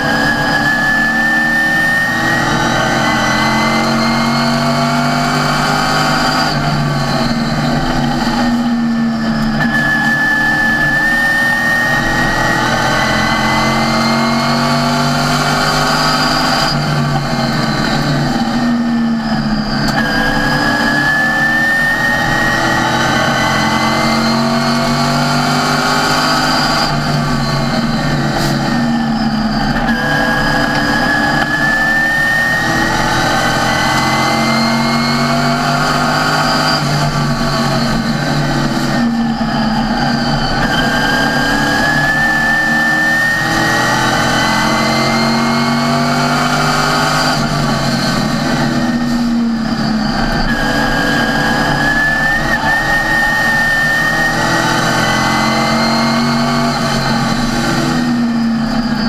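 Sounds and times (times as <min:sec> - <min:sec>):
high whine: 0:00.0 - 0:59.0
race car engine at speed: 0:00.0 - 0:59.0.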